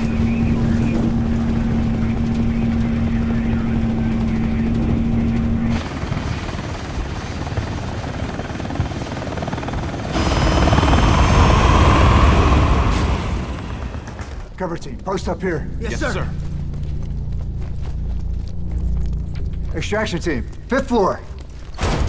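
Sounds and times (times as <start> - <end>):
helicopter rotors and engine: 0.0 - 21.8.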